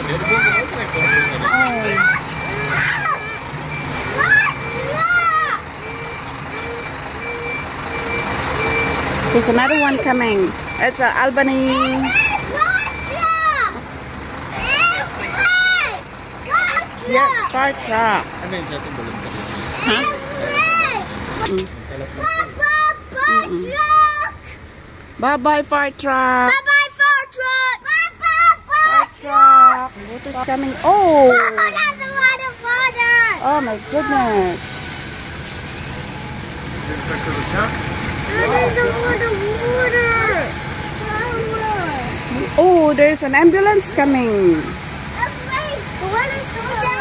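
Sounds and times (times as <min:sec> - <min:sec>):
two-tone electronic warning beeps: 0:00.2 - 0:13.4
child's high exclamation: 0:01.4 - 0:03.4, 0:04.1 - 0:05.7, 0:11.7 - 0:13.8, 0:14.6 - 0:17.5, 0:19.8 - 0:21.1, 0:22.2 - 0:24.4, 0:26.5 - 0:29.8, 0:31.2 - 0:34.2, 0:38.3 - 0:42.0, 0:45.2 - 0:47.0.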